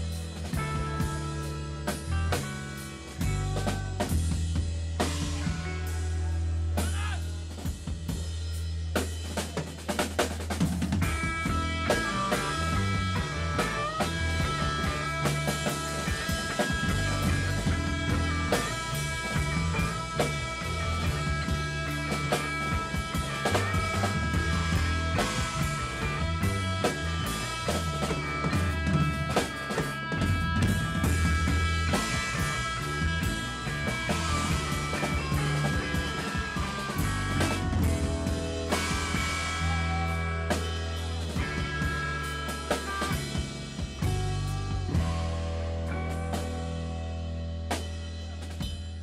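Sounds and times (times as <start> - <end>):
held guitar and keyboard notes: 0.0 - 49.0
rock band playing: 0.0 - 49.0.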